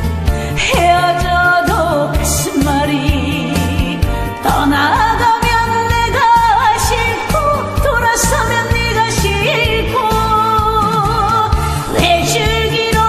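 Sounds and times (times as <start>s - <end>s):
backing track music: 0.0s - 13.0s
woman singing with vibrato: 0.5s - 13.0s.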